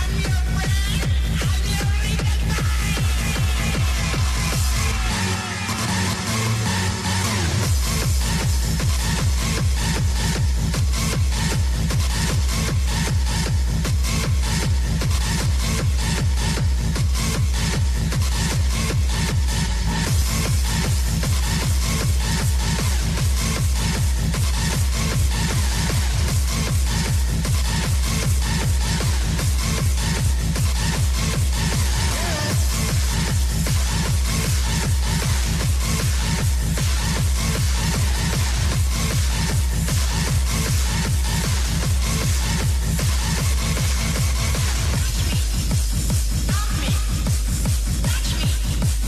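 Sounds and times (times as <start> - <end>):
fast kick drum: 0.0 - 5.1, 7.5 - 49.0
electronic dance music: 0.0 - 49.0.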